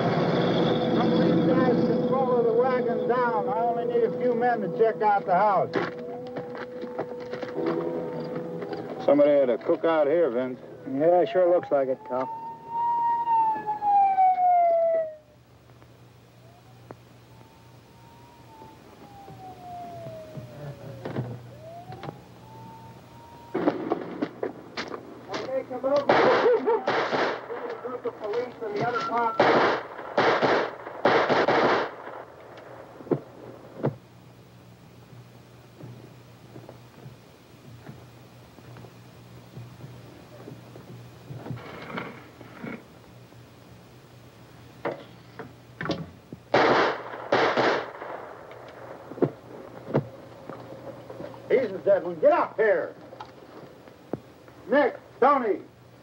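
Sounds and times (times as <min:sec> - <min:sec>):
siren wailing: 0:00.0 - 0:15.4, 0:16.3 - 0:24.3, 0:28.3 - 0:29.6
gunshots volley: 0:26.0 - 0:27.7, 0:29.2 - 0:32.3, 0:46.5 - 0:49.0.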